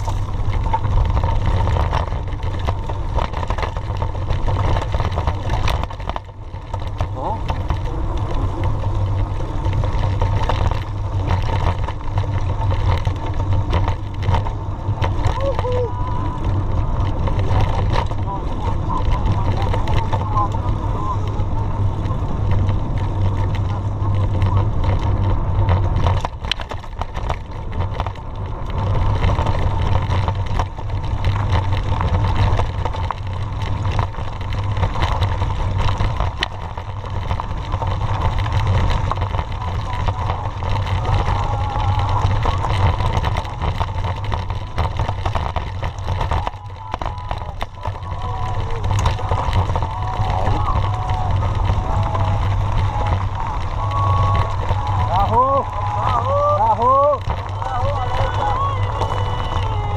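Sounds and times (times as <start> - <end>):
bike rattling over bumps: 0.0 - 59.9
tyres rumbling on dirt: 0.0 - 59.9
wind buffeting microphone: 0.0 - 59.9.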